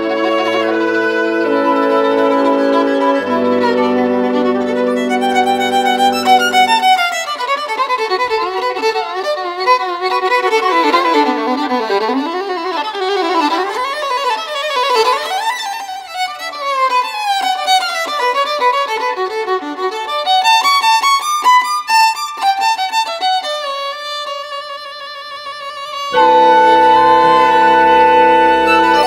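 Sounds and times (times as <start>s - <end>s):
fiddle melody: 0.0s - 29.0s.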